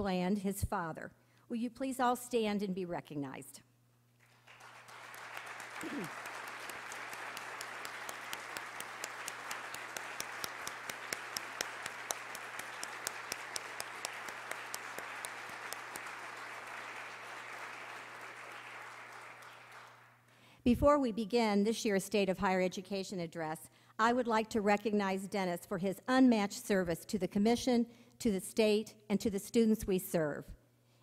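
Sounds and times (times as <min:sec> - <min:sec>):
audience applause: 0:04.2 - 0:20.2.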